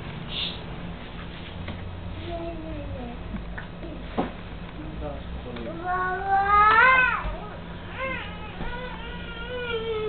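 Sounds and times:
baby crying: 5.8 - 10.0.

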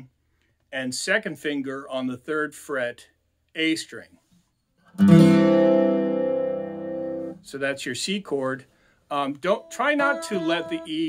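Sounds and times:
mandolin chord strummed: 5.0 - 7.4.

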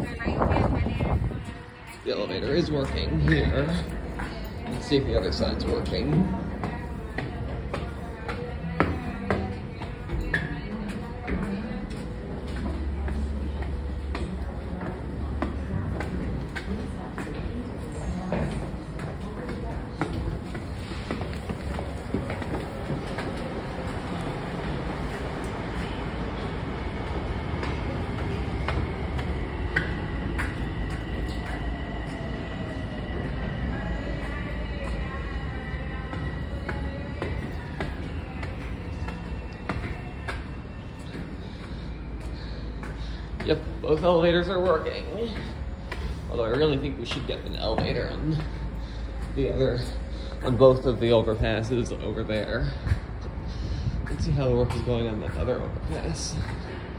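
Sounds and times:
train wheels rumbling on rail: 0.0 - 56.9.

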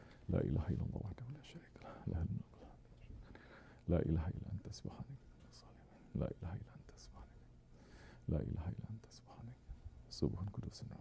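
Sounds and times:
man half-whispering: 0.0 - 7.6, 8.2 - 11.0.

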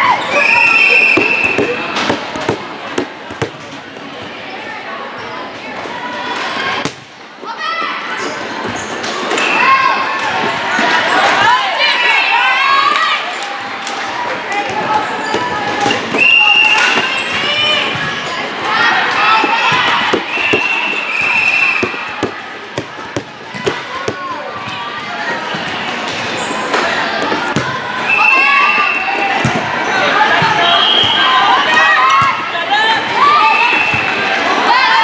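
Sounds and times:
referee's whistle blast: 0.3 - 1.8, 30.6 - 31.8
volleyball struck with sharp smacks: 1.1 - 3.8, 6.8 - 7.2, 21.7 - 24.3, 27.2 - 27.8.

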